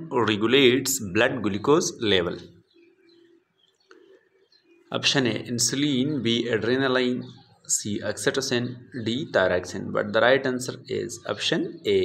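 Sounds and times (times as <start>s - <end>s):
faint bird calling: 2.5s - 5.0s.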